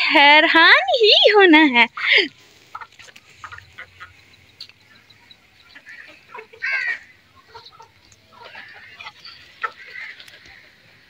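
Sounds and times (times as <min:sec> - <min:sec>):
chickens clucking: 0:01.2 - 0:11.0
faint scattered clicks: 0:02.1 - 0:06.8, 0:07.4 - 0:10.7.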